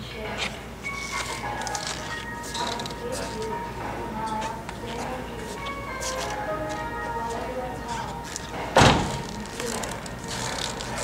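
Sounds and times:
car door slamming shut: 8.8 - 9.2.

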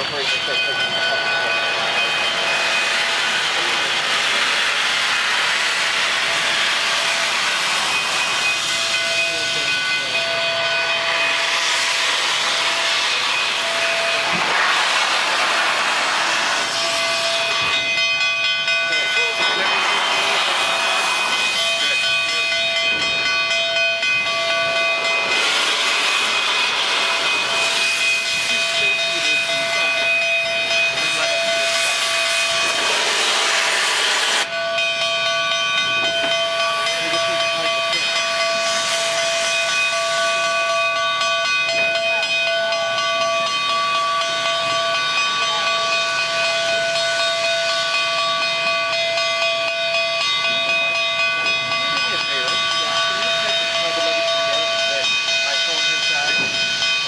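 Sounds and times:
steady whistling tones: 0.0 - 57.0
steam hissing: 0.0 - 57.0.

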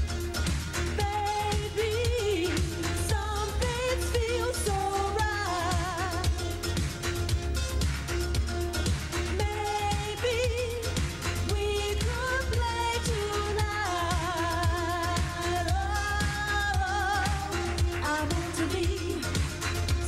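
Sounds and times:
woman singing with vibrato: 0.0 - 7.3, 9.2 - 20.0
dance backing track: 0.0 - 20.0.

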